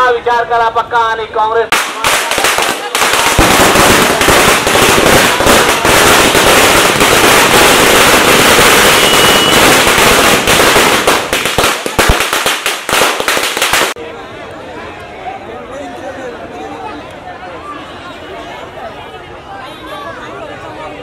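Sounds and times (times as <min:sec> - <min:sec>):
crowd voices: 0:01.5 - 0:10.4, 0:13.6 - 0:21.0
firecrackers cracking: 0:01.7 - 0:14.0.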